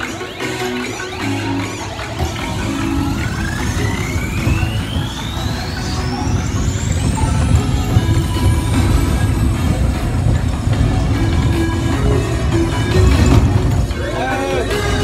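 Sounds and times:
music: 0.0 - 15.0
rising electronic sweep: 0.0 - 15.0
steady low rumble: 1.9 - 15.0.

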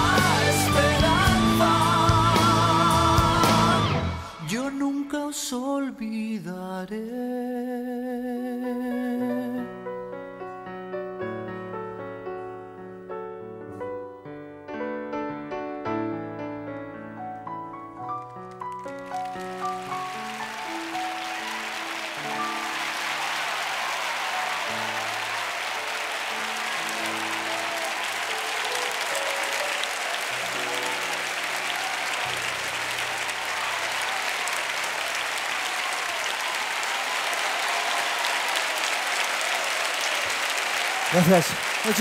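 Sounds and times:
audience applauding: 0.0 - 4.6, 17.4 - 42.0
grand piano chords: 8.8 - 34.4.

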